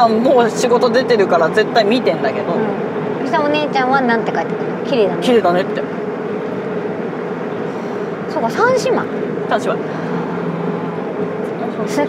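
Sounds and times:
car road and engine noise: 0.0 - 12.0
faint steady hum: 0.0 - 12.0.

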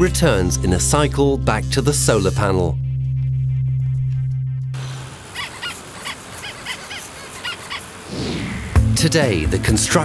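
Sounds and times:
background music chord: 0.0 - 3.0
outdoor hiss: 4.8 - 9.4.

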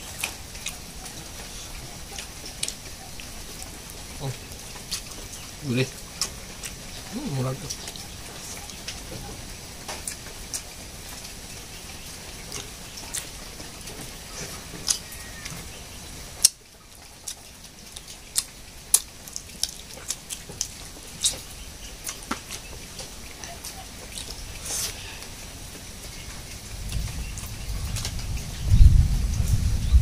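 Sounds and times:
person chewing with wet smacking: 0.0 - 15.7, 16.4 - 28.4
background hiss: 0.0 - 30.0.

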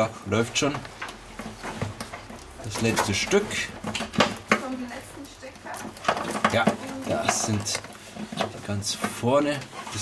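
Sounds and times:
cables and plastic connectors scraping: 0.4 - 10.0
people talking: 2.7 - 3.7, 4.6 - 7.8.

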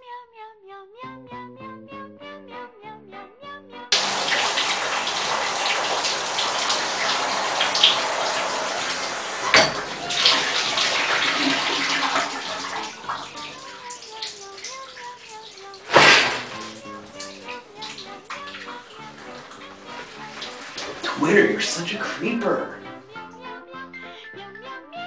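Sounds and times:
shower spray running: 4.0 - 22.5
light bouncy music: 7.2 - 25.0.

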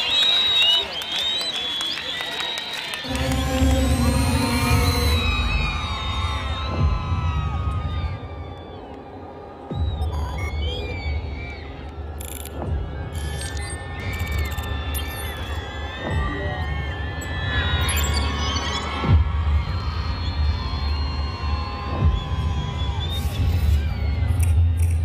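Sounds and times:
pulsing bass drone: 3.1 - 7.6.

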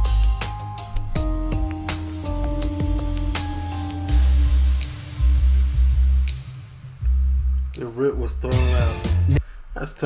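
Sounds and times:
electronic music with pulsing bass: 0.0 - 7.8.

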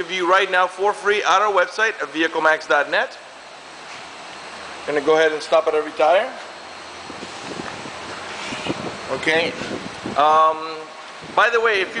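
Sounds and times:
microphone handling noise: 7.0 - 10.2.

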